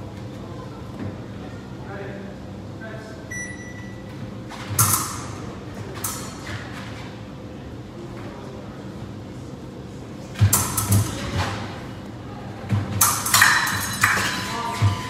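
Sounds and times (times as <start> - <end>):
steady hum: 0.0 - 15.0
short electronic beep: 3.3 - 4.0.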